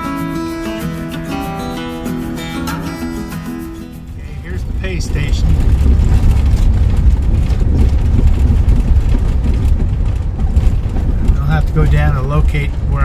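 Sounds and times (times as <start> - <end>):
music: 0.0 - 4.6
road rumble and gravel noise: 0.0 - 13.0.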